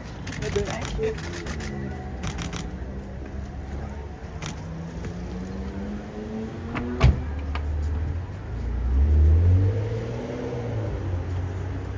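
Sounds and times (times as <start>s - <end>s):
low traffic hum: 0.0s - 11.9s.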